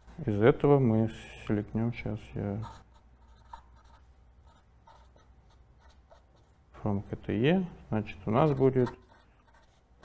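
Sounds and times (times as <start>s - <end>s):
pen scratching on paper: 2.6s - 6.6s, 8.3s - 10.0s.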